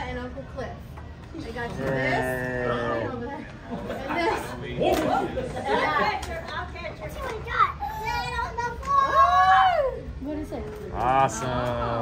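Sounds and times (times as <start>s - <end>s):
party chatter: 0.0s - 12.0s.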